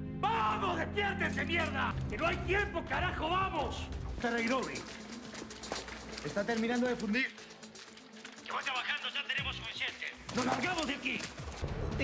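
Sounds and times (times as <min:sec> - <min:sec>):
person speaking: 0:00.2 - 0:05.0.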